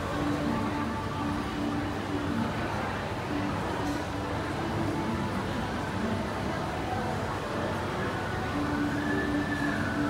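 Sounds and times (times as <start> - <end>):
rumbling hum of shopping mall: 0.0 - 10.0.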